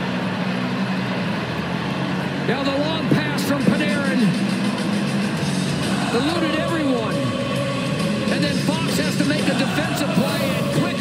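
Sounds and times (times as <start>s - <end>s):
crowd cheering: 0.0s - 11.0s
celebration music over loudspeakers: 2.4s - 11.0s.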